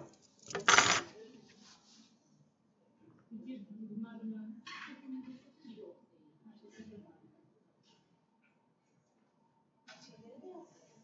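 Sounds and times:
handling noise clatter: 0.0s - 1.1s.

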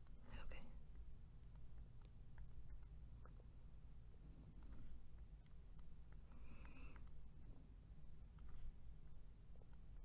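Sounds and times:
faint low hum: 0.0s - 10.0s
whispered breath: 6.3s - 7.2s.

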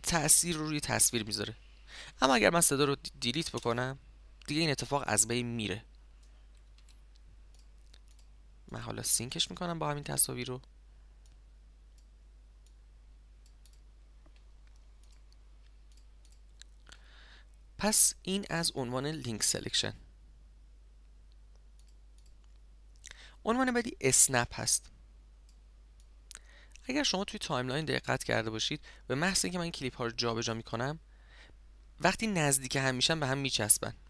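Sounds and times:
faint low hum: 0.0s - 34.0s
computer mouse clicks: 6.2s - 8.8s, 13.4s - 16.8s, 21.5s - 22.6s.

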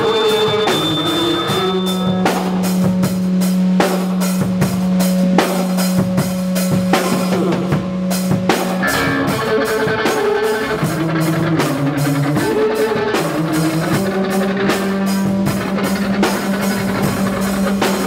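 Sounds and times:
drum and cymbal hits: 0.0s - 18.0s
electric bass: 0.0s - 18.0s.

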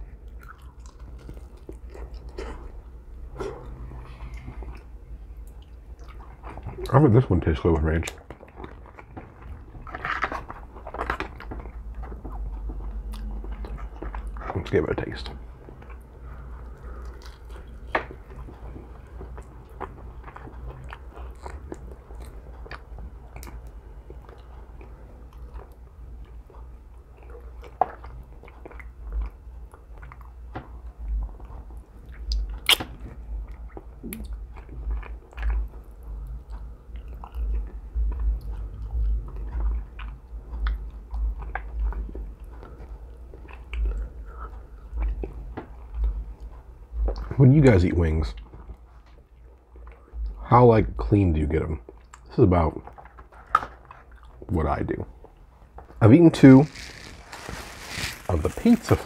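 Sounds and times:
person chewing chicken wing: 0.0s - 6.9s, 15.6s - 47.3s.

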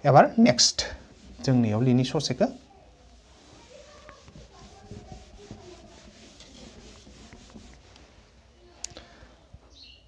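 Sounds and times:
cloth wiping whiteboard: 0.6s - 8.3s.

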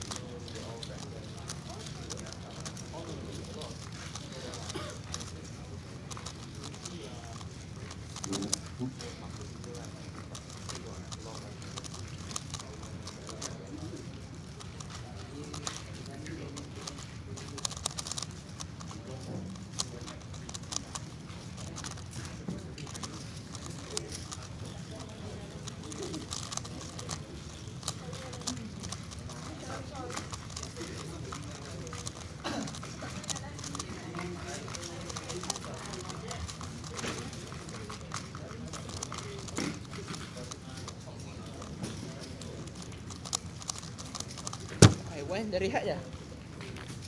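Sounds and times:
plastic puzzle layers clicking: 0.0s - 45.2s
murmur of voices: 0.0s - 47.0s.

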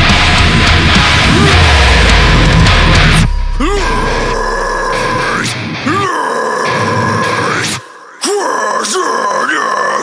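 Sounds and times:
electric guitar swooping notes: 0.0s - 5.9s.

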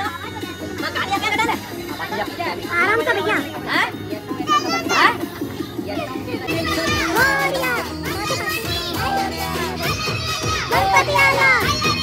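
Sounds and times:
music with repeated notes: 0.0s - 12.0s
children calling out: 6.4s - 12.0s.

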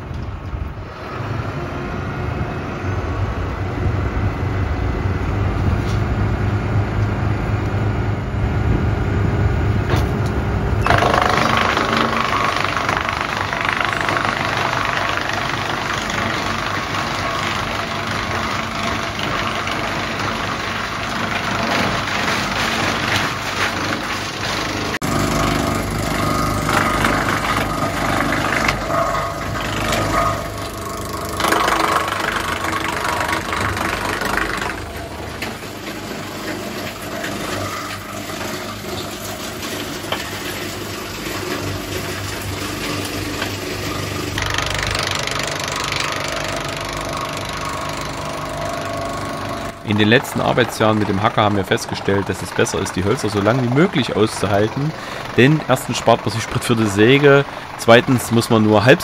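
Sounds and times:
tractor engine: 0.0s - 59.0s
wood chipper chipping branches: 8.7s - 59.0s.

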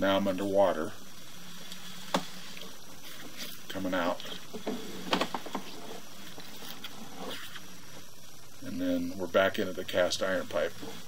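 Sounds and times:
steady hiss: 0.0s - 11.0s
cable scraping and rustling: 1.6s - 8.1s.

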